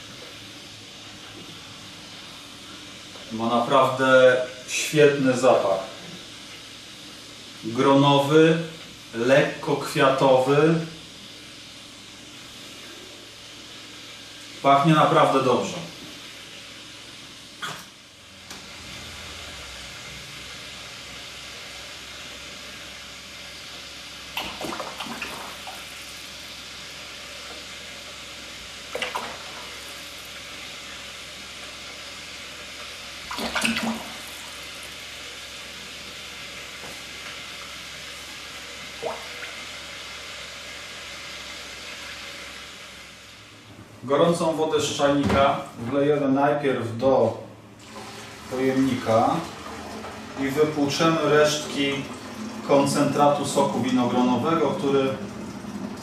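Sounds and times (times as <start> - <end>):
liquid pouring into plastic bucket: 47.8 - 48.7.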